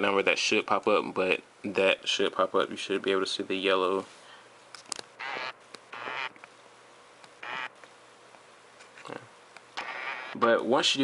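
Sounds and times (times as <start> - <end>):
camcorder zoom motor whirring: 5.2 - 6.4, 7.4 - 7.7, 9.8 - 10.4.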